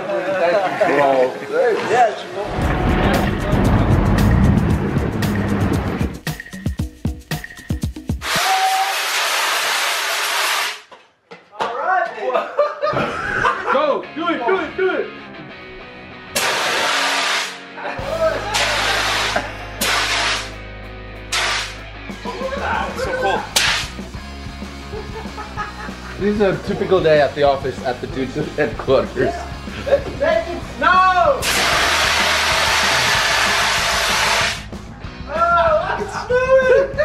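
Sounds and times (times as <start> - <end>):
fire extinguisher hissing: 8.2 - 10.8, 16.4 - 17.6, 18.6 - 20.6, 21.3 - 21.8, 31.4 - 34.7.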